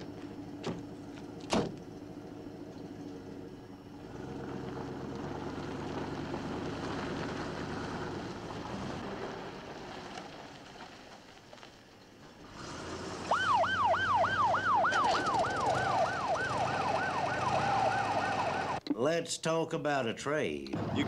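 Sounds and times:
van engine running: 0.0s - 18.8s
siren yelping: 13.2s - 18.8s.

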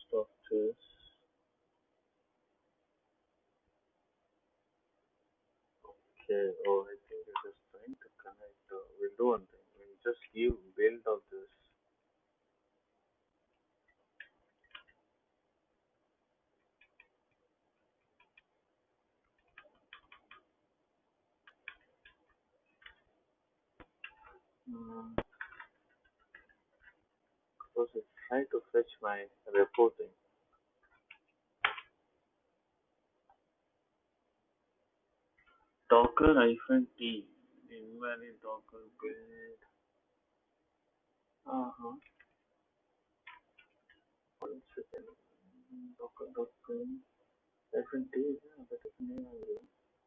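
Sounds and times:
keyboard and mouse clicks: 13.9s - 15.0s, 16.6s - 17.4s, 18.0s - 18.5s, 19.2s - 20.5s, 21.4s - 23.1s, 23.8s - 24.4s, 25.2s - 27.0s, 30.8s - 32.0s, 42.0s - 42.4s, 43.2s - 44.0s.

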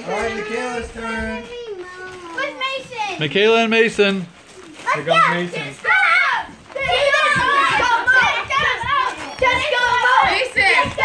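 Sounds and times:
children talking and calling out: 0.0s - 3.6s, 4.2s - 11.0s.

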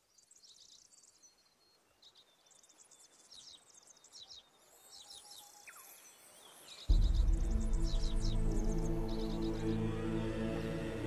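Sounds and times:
birds chirping and trilling: 0.0s - 11.0s.

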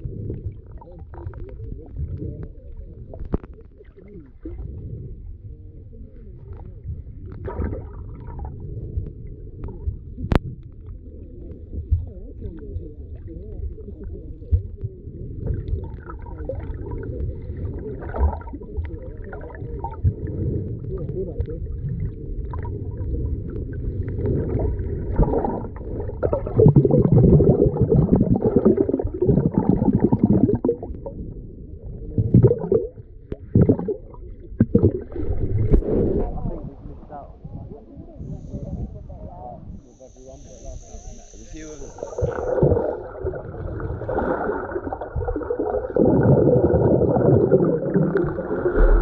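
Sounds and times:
underwater water bubbling: 0.0s - 49.0s
muffled voices: 35.8s - 43.1s
water splashing: 41.6s - 49.0s.

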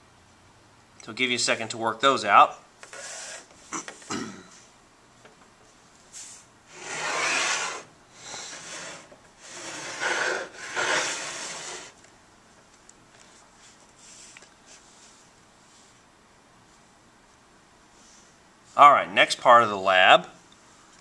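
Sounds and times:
transducer scraping on steel: 6.7s - 12.0s.

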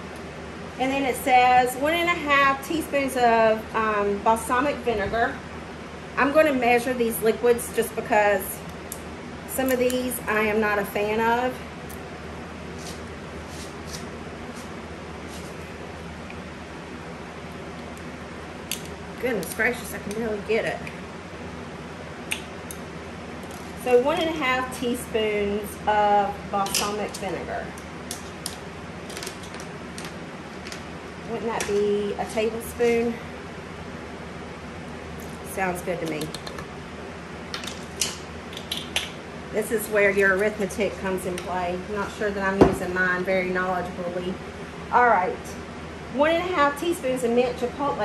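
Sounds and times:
steady background hum: 0.0s - 48.0s.

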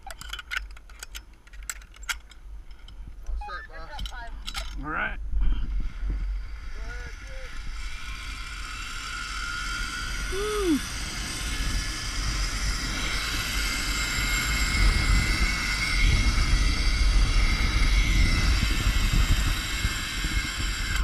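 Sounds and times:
wind rushing on microphone: 5.2s - 21.0s
zipline trolley whine: 5.6s - 21.0s.

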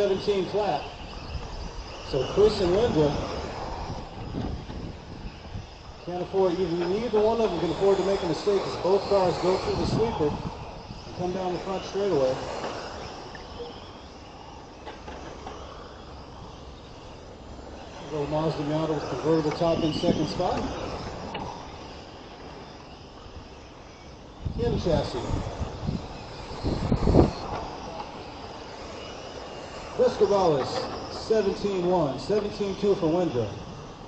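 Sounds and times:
electric toy car motors whining: 0.0s - 34.0s.

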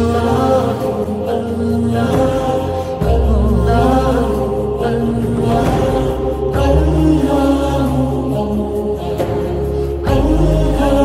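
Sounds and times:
steady low drone: 0.0s - 11.0s
voices chanting long held notes: 0.0s - 11.0s.

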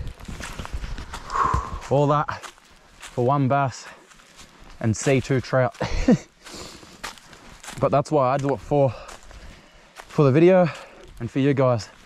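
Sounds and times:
footsteps on dry leaves and stones: 0.0s - 12.0s.

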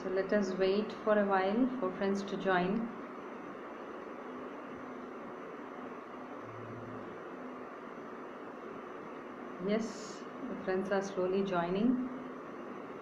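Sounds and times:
faint low hum: 0.0s - 13.0s
room noise hiss: 0.0s - 13.0s.

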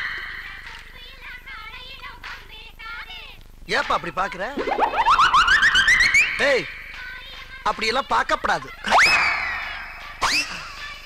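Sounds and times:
rising warbling chirps: 4.5s - 7.2s.

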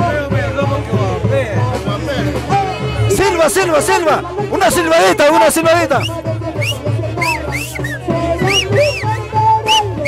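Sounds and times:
festive band music: 0.0s - 10.0s
swooping whistles: 6.0s - 10.0s.

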